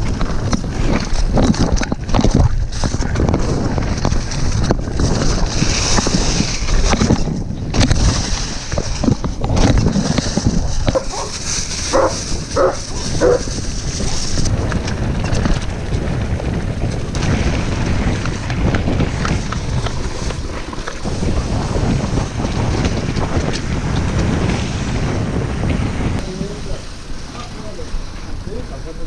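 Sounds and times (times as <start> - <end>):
tyres rumbling on dirt trail: 0.0 - 29.0
wind rushing over camera: 0.0 - 29.0
dog barking: 10.9 - 13.5.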